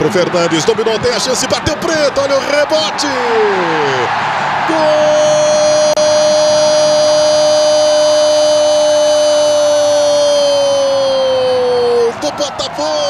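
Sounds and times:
commentator's long goal cry: 4.6 - 13.0.

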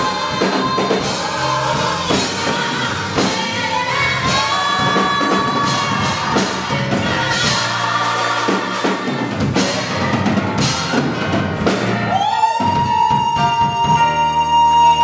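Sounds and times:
gospel choir singing: 0.0 - 14.2
drum kit: 0.0 - 15.0.

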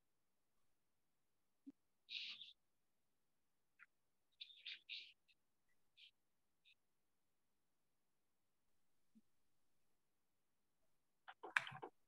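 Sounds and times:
faint high-pitched chirps: 1.6 - 2.8, 3.6 - 7.0.

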